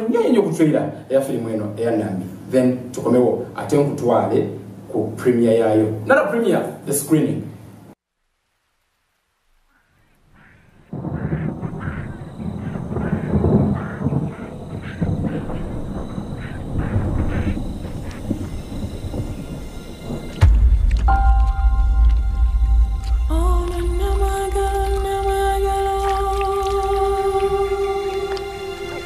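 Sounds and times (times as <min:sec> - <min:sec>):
noisy cinematic ambience: 0:08.2 - 0:29.0
loud deep rumble: 0:11.0 - 0:29.0
sustained music tones: 0:17.0 - 0:29.0.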